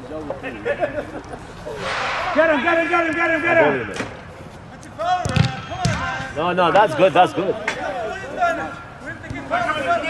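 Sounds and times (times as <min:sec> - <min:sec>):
players shouting: 0:01.8 - 0:04.3, 0:04.9 - 0:10.0
soccer ball kicked thump: 0:05.2 - 0:06.1.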